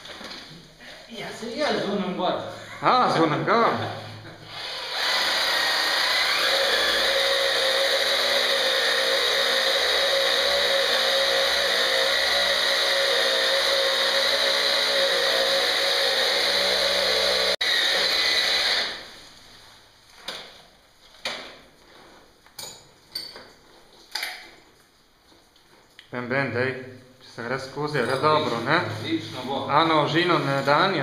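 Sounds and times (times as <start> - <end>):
power drill boring into rock: 4.5 - 19.0.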